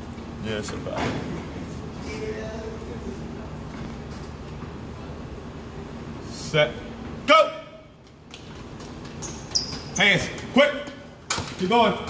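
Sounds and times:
sneaker squeaks: 8.3s - 10.6s.

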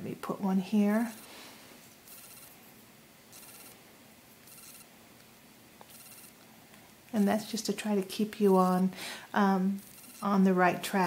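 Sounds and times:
soft brushing noises: 0.8s - 2.8s, 7.2s - 8.9s.

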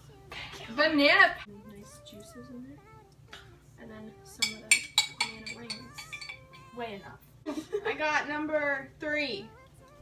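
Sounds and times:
spoon clinking against glass jar: 4.4s - 6.7s.

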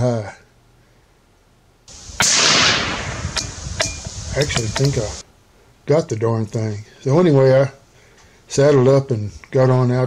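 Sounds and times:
rifle shot with echo: 1.9s - 5.2s.

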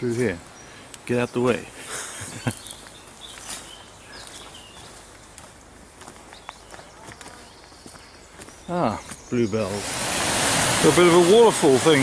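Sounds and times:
outdoor hiss: 0.0s - 6.5s, 8.6s - 12.0s
bird chirps: 2.2s - 5.1s, 6.2s - 9.9s
footsteps on footpath: 2.5s - 9.4s.

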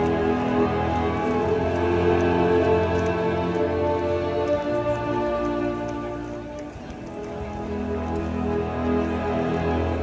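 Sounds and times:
orchestra holding chords: 0.0s - 10.0s.

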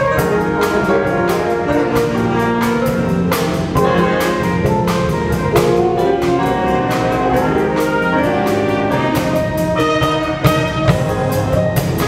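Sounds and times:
drum kit steady beat: 0.0s - 12.0s
saxophones and brass chords: 0.0s - 12.0s.

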